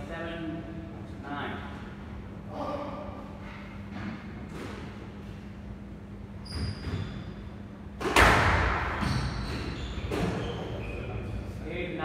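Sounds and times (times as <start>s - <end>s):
squash ball cracking off wall: 8.0s - 9.0s.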